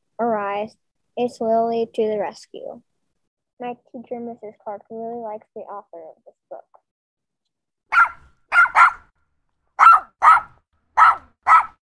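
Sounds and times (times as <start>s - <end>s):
dog barking: 7.9s - 9.1s, 9.8s - 11.8s.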